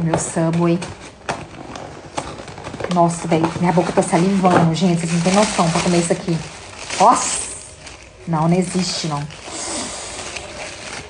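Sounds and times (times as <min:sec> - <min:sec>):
paper wrapping crinkling: 0:00.0 - 0:11.0
paper wrapping tearing: 0:01.0 - 0:11.0.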